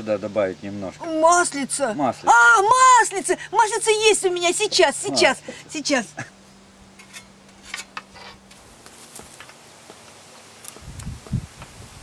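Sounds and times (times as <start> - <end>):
rustling: 6.5 - 11.8.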